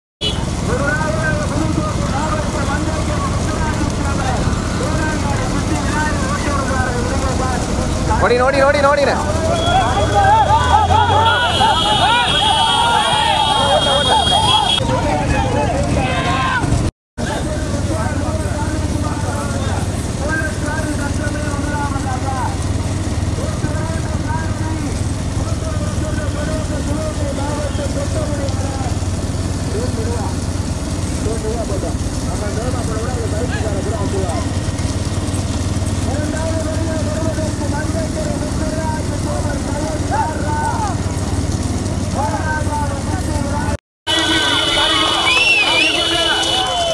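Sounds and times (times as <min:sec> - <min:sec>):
motorcycle engines droning: 0:00.2 - 0:46.9
men shouting: 0:09.1 - 0:17.5, 0:44.1 - 0:46.9.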